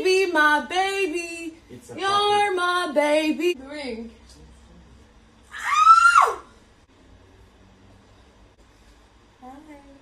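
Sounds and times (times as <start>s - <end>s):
woman squealing: 5.5s - 6.5s.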